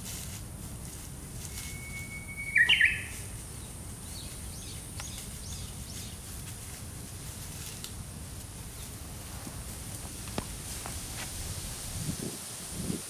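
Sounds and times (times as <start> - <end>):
bird singing: 1.5 - 6.2
faint short bird calls: 1.6 - 3.3.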